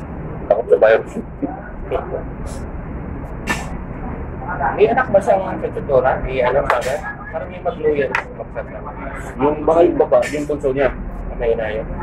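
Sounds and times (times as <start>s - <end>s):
faint voices: 3.5s - 12.0s.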